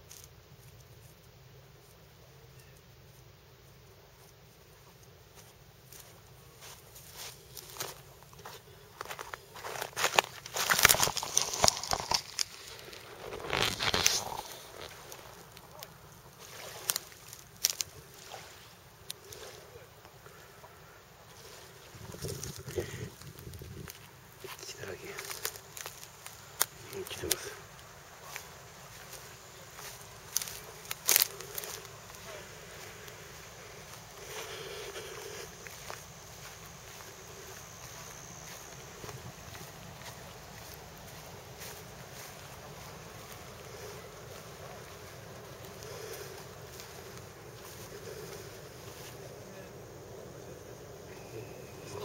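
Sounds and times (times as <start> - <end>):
open-air hiss: 0.0 - 52.0
wind buffeting microphone: 21.9 - 24.0.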